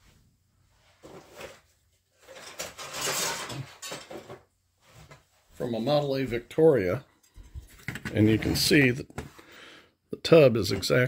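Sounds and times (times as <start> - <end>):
objects being handled: 0.9 - 5.4, 7.2 - 9.4.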